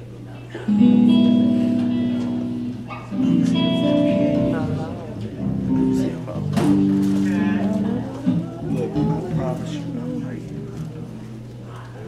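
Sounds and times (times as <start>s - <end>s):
guitar chord ringing: 0.7s - 9.6s
live gospel band music: 0.8s - 10.2s.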